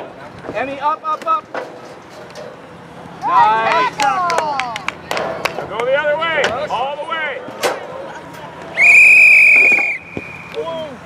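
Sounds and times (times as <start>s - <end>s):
referee's whistle blast: 8.8s - 10.5s.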